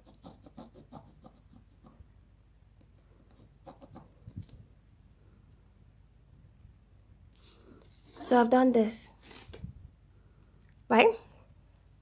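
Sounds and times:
pencil scratching on paper: 0.0s - 2.0s, 3.2s - 4.2s.

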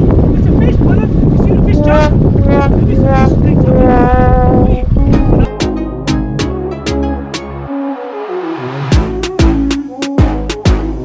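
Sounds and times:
wind rumble on microphone: 0.0s - 5.5s
boat engine running: 0.0s - 7.1s
man calling out: 0.7s - 5.5s.

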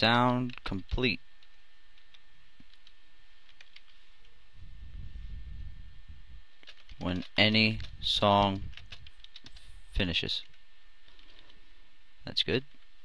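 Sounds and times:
background hiss: 0.0s - 13.0s
keyboard keys typing: 0.1s - 4.3s, 6.6s - 9.7s, 10.4s - 11.6s.

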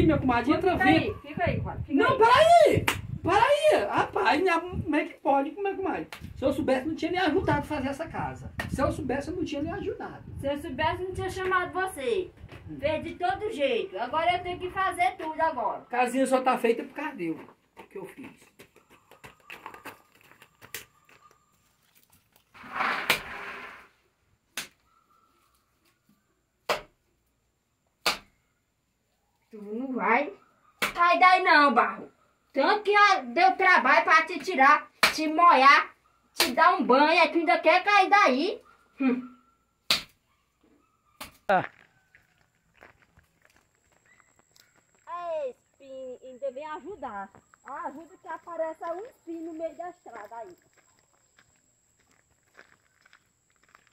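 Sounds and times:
bare feet stepping on dirt: 17.3s - 22.6s, 41.2s - 45.2s, 47.4s - 53.9s.

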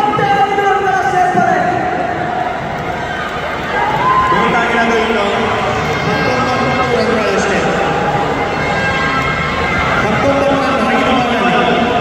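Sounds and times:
crowd hubbub in large hall: 0.0s - 12.0s.

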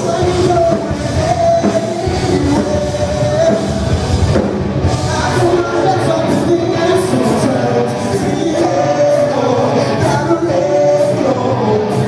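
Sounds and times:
bass guitar: 0.0s - 12.0s
electric guitar: 0.0s - 12.0s
pounding drum kit: 0.0s - 12.0s.

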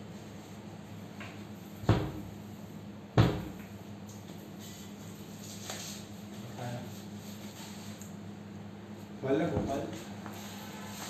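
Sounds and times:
wooden cabinet doors knocking shut: 1.9s - 2.2s, 3.2s - 3.6s.

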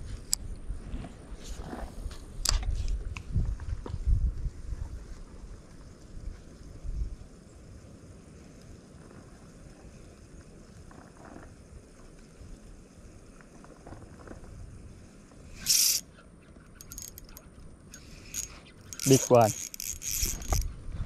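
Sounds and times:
background noise: 0.0s - 21.0s
loud hiss-like rustle: 4.8s - 16.1s
fishing reel cranking: 15.5s - 16.0s, 16.8s - 20.7s
small clicks: 15.6s - 16.0s, 16.8s - 20.7s.

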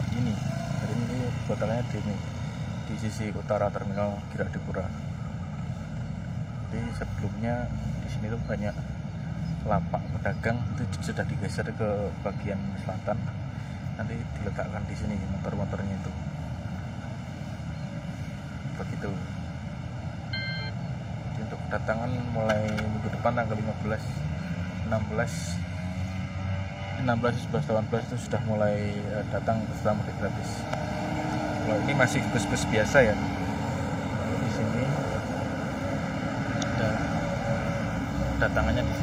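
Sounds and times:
low outdoor rumble: 0.0s - 39.0s
brief high-pitched tone: 20.3s - 20.7s.

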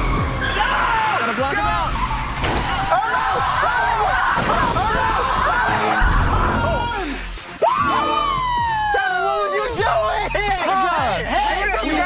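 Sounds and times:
background music: 0.0s - 12.0s
people shouting and whooping: 0.0s - 12.0s.

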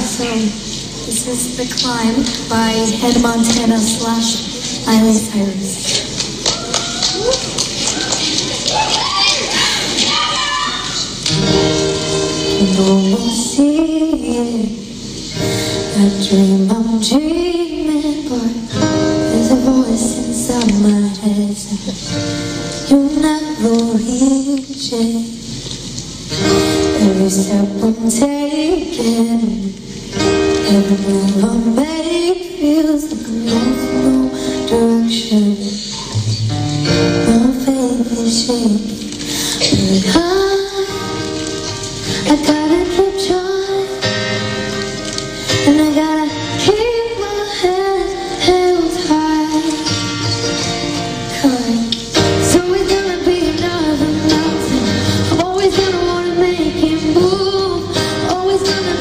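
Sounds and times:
girl singing pop ballad: 0.0s - 5.8s, 9.0s - 25.6s, 26.3s - 36.0s, 36.8s - 59.0s
acoustic guitar: 0.0s - 59.0s.

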